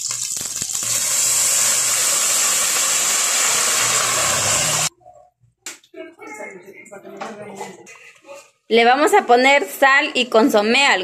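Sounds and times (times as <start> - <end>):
sauce sizzling in hot oil: 0.0 - 4.9.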